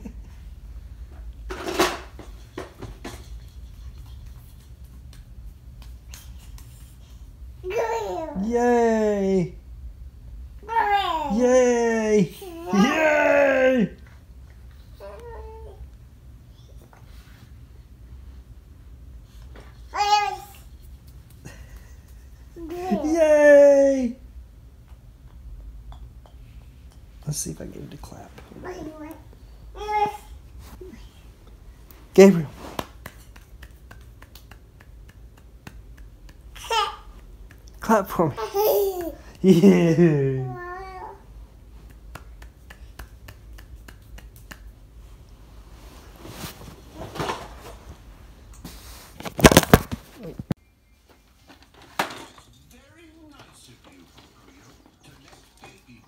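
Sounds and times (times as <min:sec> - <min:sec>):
light sharp hand clicks: 0:41.9 - 0:44.7.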